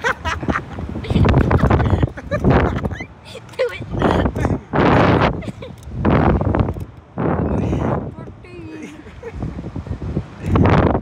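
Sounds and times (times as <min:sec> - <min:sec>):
riders laughing: 0:00.0 - 0:06.3, 0:08.6 - 0:09.7
wind gusts on microphone: 0:00.0 - 0:11.0.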